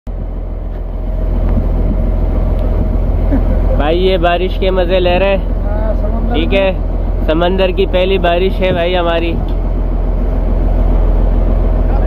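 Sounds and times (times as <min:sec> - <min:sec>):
boat engine droning: 0:00.1 - 0:12.0.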